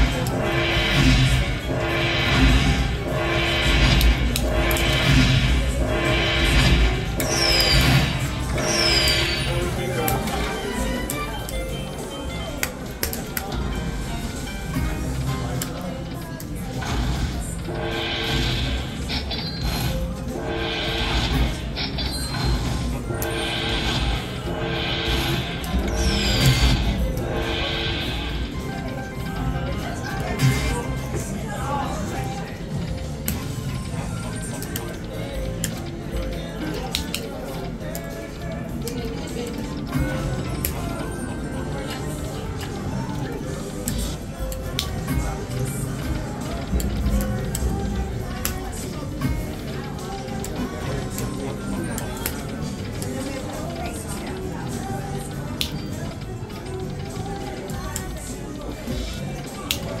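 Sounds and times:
casino chatter: 0:00.0 - 1:00.0
slot machine music and sounds: 0:00.0 - 1:00.0.

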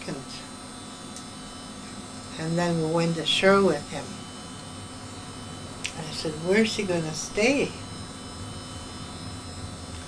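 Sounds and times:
electrical hum with hiss: 0:00.0 - 0:10.0.

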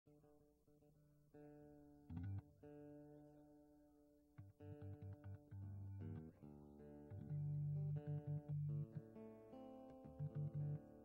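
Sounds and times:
acoustic guitar notes: 0:04.4 - 0:11.0.

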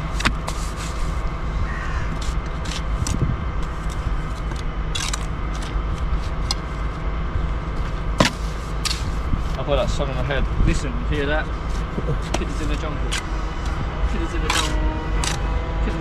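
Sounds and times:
low mechanical drone: 0:00.0 - 0:16.0.

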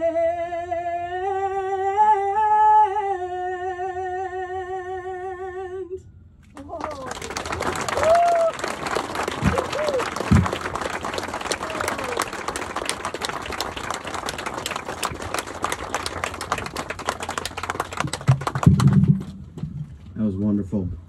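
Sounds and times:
crowd cheering: 0:06.6 - 0:19.5
audience applauding: 0:06.6 - 0:19.6.

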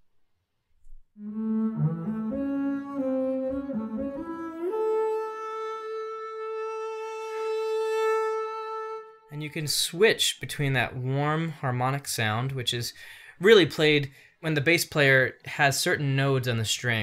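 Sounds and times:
bowed double bass: 0:01.2 - 0:09.0.

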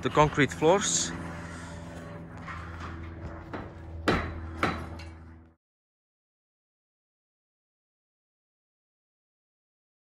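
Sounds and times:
steady low hum: 0:00.0 - 0:05.6
steel props knocking: 0:02.8 - 0:05.3.

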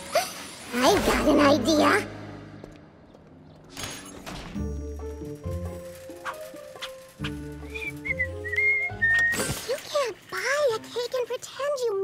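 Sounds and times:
background music low sustained notes: 0:00.0 - 0:12.0
cartoon character whistling: 0:07.7 - 0:09.5.

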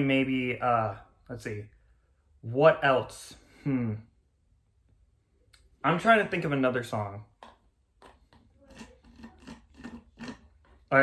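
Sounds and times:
sipping through a straw: 0:08.4 - 0:10.9.

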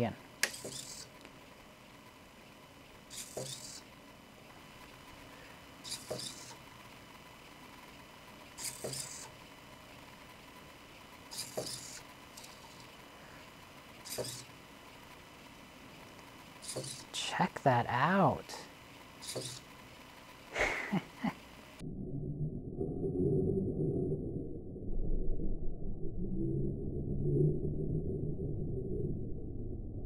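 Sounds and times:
servo motors buzzing: 0:00.4 - 0:01.3, 0:03.0 - 0:04.0, 0:04.8 - 0:07.2, 0:08.5 - 0:09.5, 0:11.2 - 0:15.2, 0:16.2 - 0:17.2, 0:18.6 - 0:20.3.

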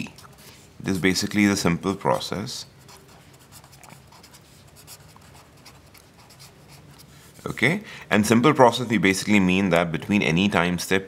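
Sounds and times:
pen scratching on paper: 0:02.8 - 0:07.2.

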